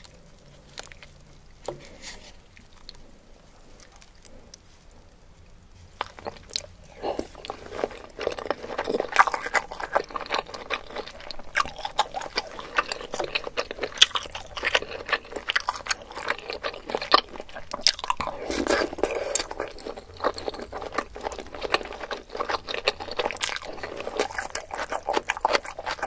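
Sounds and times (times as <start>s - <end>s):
mouth chewing wet food: 0.0s - 26.0s.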